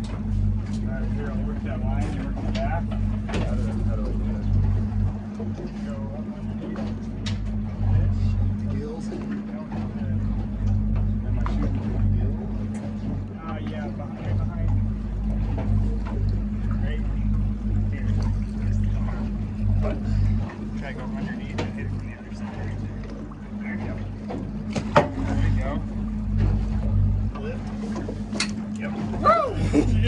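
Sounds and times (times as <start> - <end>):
boat engine idling: 0.0 - 30.0.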